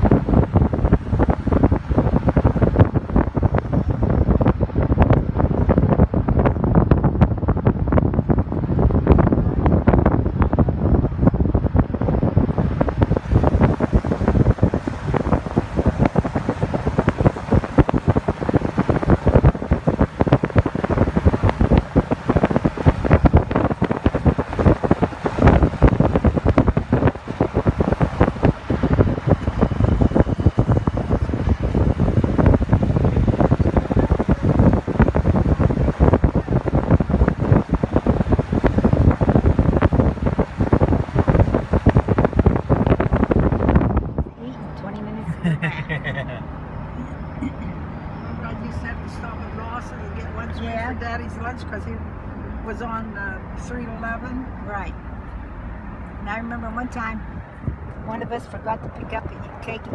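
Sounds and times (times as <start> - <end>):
road noise: 0.0 - 59.9
wind buffeting microphone: 0.0 - 59.9.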